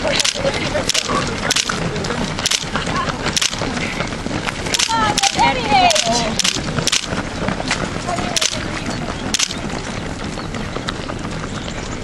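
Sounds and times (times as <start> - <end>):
steady noisy background: 0.0 - 4.0, 4.6 - 7.2, 8.2 - 9.7
runners' footsteps on asphalt: 0.0 - 12.0.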